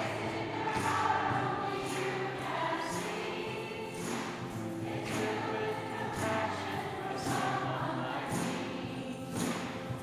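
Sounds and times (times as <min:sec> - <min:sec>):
women's choir singing: 0:00.0 - 0:09.8.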